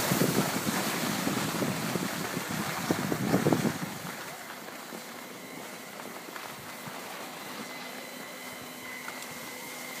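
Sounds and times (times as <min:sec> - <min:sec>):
faint high whine: 0:00.0 - 0:10.0
skis sliding over snow: 0:00.0 - 0:10.0.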